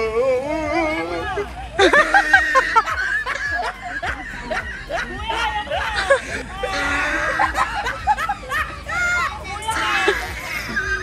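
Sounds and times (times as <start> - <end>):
people laughing: 0.0 - 11.0.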